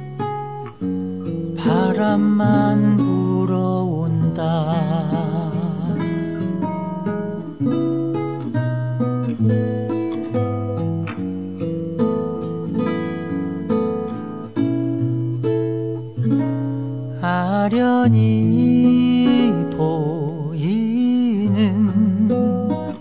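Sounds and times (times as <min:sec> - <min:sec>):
plucked string melody: 0:00.0 - 0:23.0.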